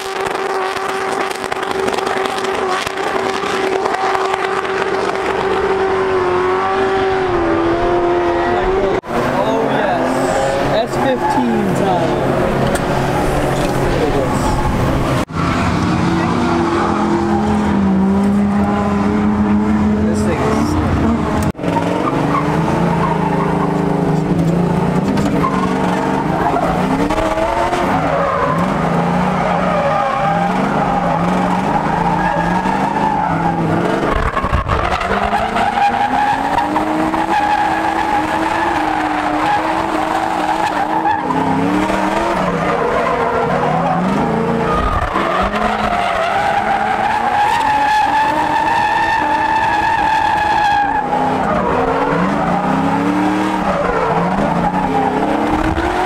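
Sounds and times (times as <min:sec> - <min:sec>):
car engines revving hard: 0:00.0 - 0:56.0
tires squealing: 0:00.0 - 0:56.0.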